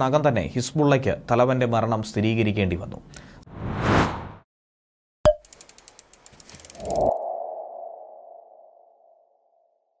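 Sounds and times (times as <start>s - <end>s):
quick ticks: 5.4s - 7.1s.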